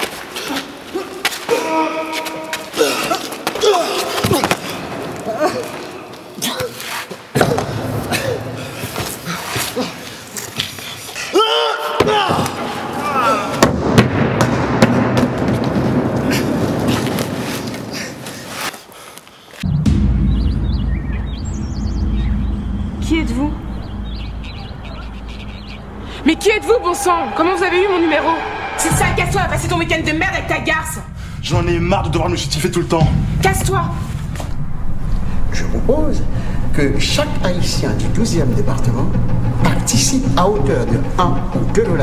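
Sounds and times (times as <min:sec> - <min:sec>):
loud low drone: 0:19.6 - 0:42.0
songbirds chirping: 0:19.7 - 0:26.7.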